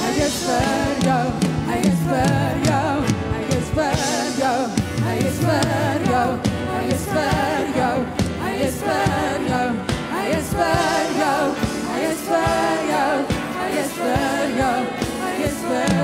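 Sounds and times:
band playing worship music: 0:00.0 - 0:16.0
woman singing with vibrato: 0:00.0 - 0:16.0.

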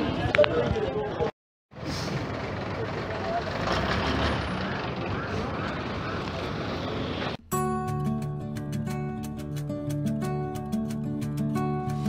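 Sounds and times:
street traffic: 0:00.0 - 0:07.4
voices of passers-by: 0:00.0 - 0:07.4
bus engine running: 0:01.7 - 0:07.4.

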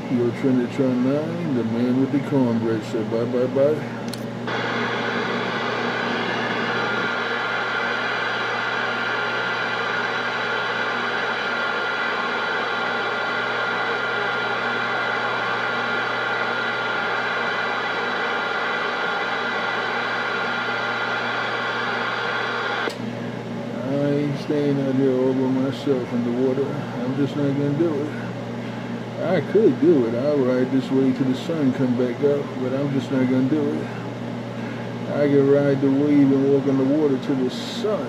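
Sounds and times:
radio static hiss: 0:04.5 - 0:15.2, 0:17.9 - 0:22.9.

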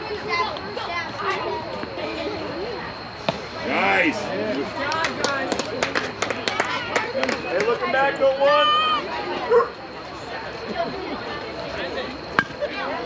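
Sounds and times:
voices: 0:00.0 - 0:13.0.

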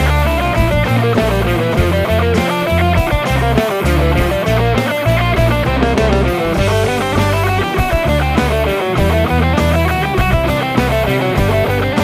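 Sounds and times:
bass line: 0:00.0 - 0:12.0
drum hits: 0:00.0 - 0:12.0
electric guitar fast runs: 0:00.0 - 0:12.0.

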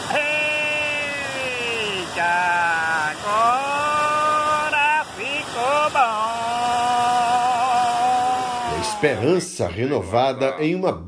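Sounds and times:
person yelling excitedly: 0:00.0 - 0:04.0, 0:08.3 - 0:10.6
floodwater rushing over spillway: 0:00.0 - 0:10.4.

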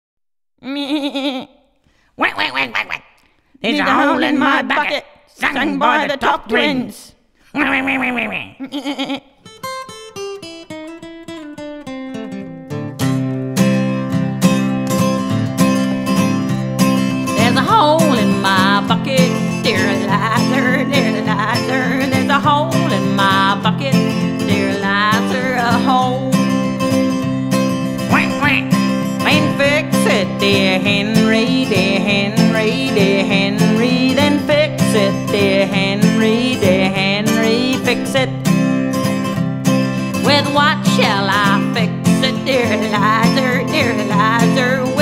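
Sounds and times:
plucked acoustic guitar: 0:03.7 - 0:06.8, 0:09.4 - 0:45.0.

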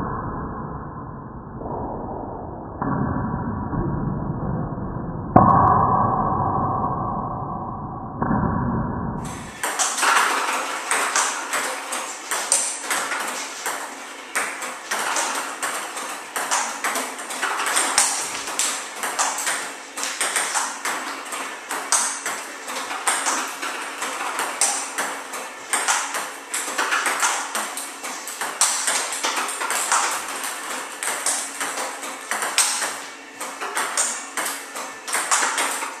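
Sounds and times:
table tennis balls clicking: 0:09.2 - 0:36.0.

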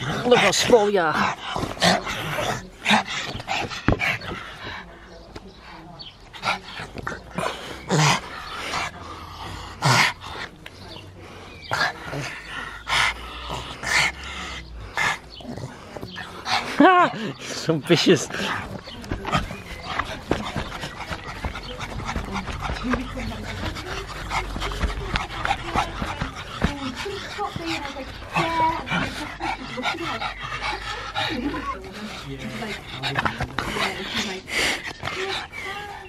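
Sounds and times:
dog panting quickly: 0:00.0 - 0:36.0.

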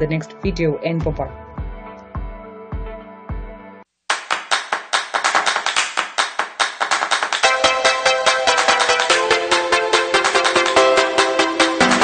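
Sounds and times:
sharp handclaps: 0:04.1 - 0:07.8, 0:08.4 - 0:09.3.

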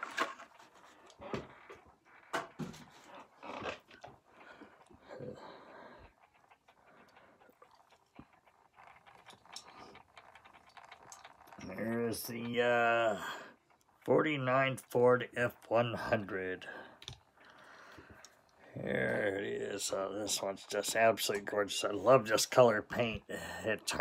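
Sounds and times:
plastic and cardboard rustling: 0:00.0 - 0:04.2.

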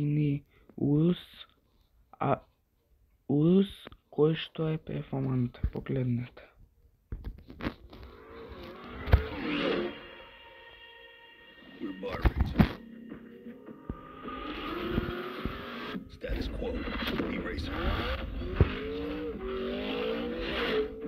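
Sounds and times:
rising engine-like tone: 0:08.1 - 0:12.0, 0:12.8 - 0:21.0
dramatic cinematic music: 0:09.1 - 0:19.4.

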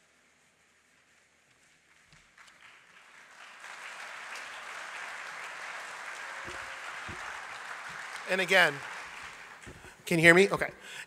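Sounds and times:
audience applauding: 0:01.9 - 0:10.7.

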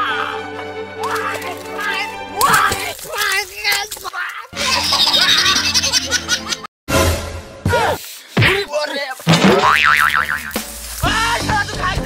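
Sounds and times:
background music: 0:00.0 - 0:03.1, 0:04.5 - 0:08.0, 0:09.3 - 0:12.0
cartoon spring boing: 0:09.4 - 0:10.5.

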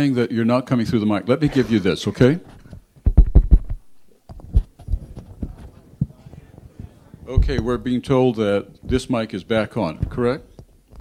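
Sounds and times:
microphone handling knocks: 0:02.4 - 0:08.2, 0:10.0 - 0:11.0.

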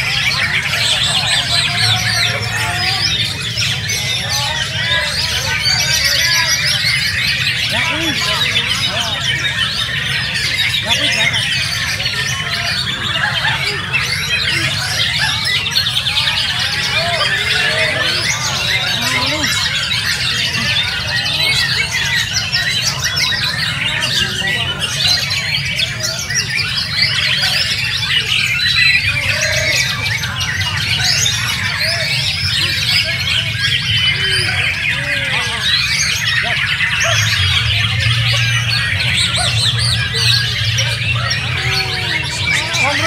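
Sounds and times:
caged birds singing: 0:00.0 - 0:43.0
low hum of crowd noise: 0:00.0 - 0:43.0.

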